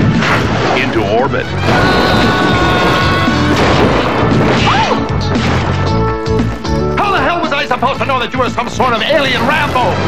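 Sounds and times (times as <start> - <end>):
crash and smash sound effects: 0.0 - 5.7
background music: 0.0 - 10.0.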